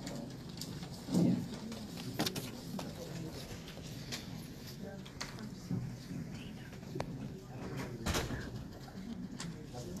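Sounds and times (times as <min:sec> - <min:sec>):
low murmured voices: 0:00.0 - 0:10.0.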